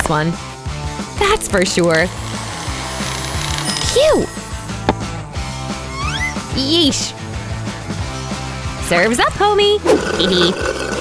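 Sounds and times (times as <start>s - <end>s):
background music: 0.0s - 11.0s
electric blender running: 1.6s - 4.9s.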